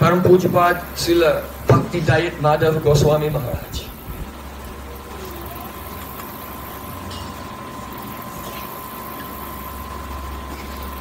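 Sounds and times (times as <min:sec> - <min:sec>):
low mechanical hum: 0:00.0 - 0:11.0
thin high tone: 0:04.6 - 0:11.0.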